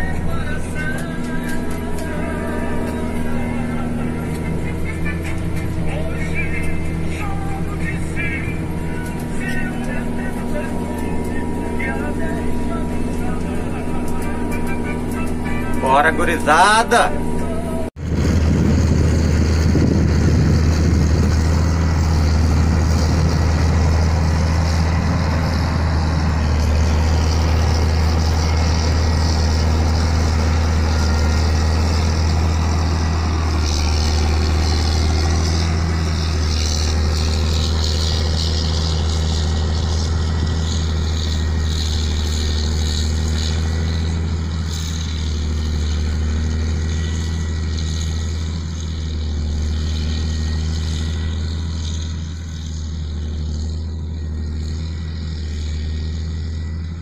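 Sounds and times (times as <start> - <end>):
diesel engine humming: 0.0 - 57.0.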